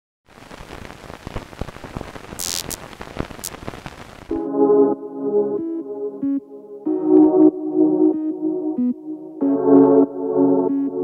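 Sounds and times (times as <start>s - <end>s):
crackling static hiss: 0.3s - 4.4s
bursts of sharp high hiss: 0.4s - 4.3s.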